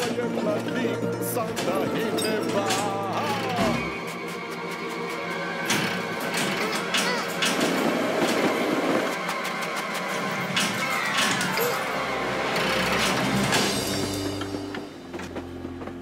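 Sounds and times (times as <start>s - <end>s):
cartoon music: 0.0s - 4.2s
wheels clacking on railway track: 4.5s - 16.0s.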